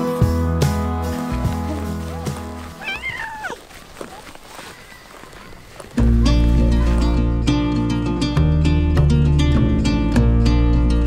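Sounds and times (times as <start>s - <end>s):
acoustic guitar music: 0.0s - 3.0s, 5.1s - 11.0s
cat meowing: 2.8s - 3.6s.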